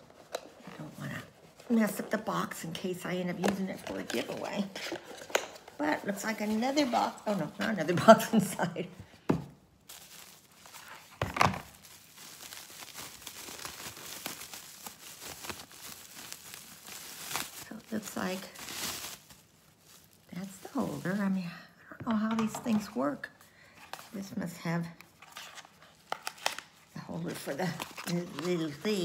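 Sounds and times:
packaging crinkling and tearing: 9.8s - 21.3s, 25.0s - 29.0s.

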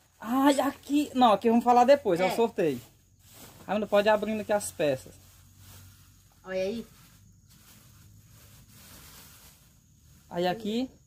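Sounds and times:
plastic bag rustling: 2.3s - 10.9s.

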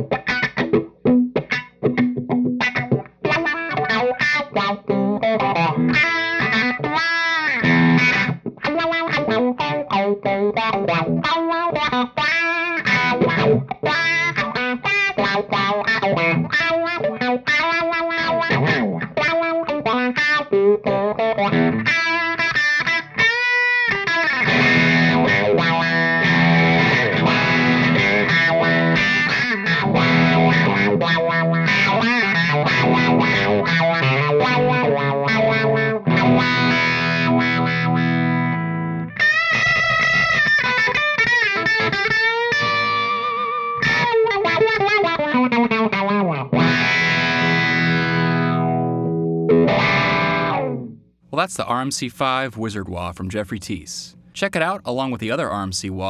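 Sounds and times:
overdriven electric guitar with wah: 0.0s - 50.9s.

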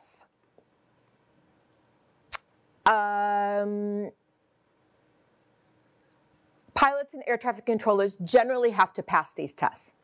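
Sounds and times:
woman saying um: 2.9s - 4.1s.

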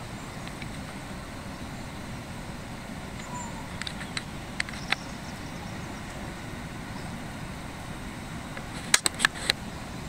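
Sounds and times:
low outdoor rumble: 0.0s - 10.0s
sharp clicks: 8.6s - 9.6s.

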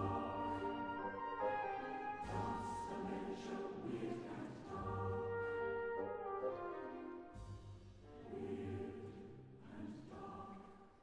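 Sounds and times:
orchestral accompaniment: 0.0s - 9.2s
mixed chorus singing softly: 0.0s - 11.0s.

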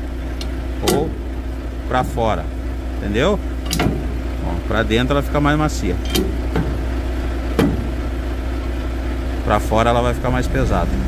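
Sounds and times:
diesel truck engine idling: 0.0s - 11.0s
sharp click: 0.4s - 1.1s, 3.6s - 3.9s.

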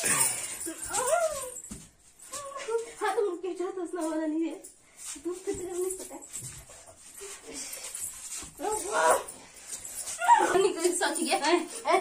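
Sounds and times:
girls whining straining cries: 0.0s - 1.7s, 8.6s - 9.4s, 10.0s - 10.8s.

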